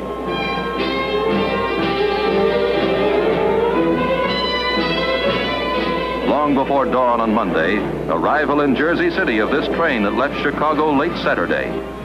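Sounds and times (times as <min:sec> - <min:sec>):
orchestral strings playing chords: 0:00.0 - 0:12.0.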